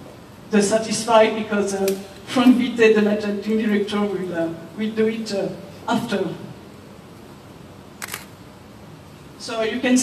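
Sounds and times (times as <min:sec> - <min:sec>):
room hum: 0:00.0 - 0:10.0.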